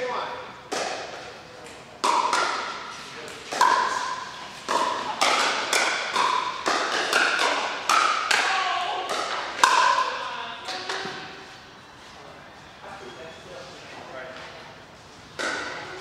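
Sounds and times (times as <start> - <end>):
paddles striking plastic ball: 4.7 - 10.0.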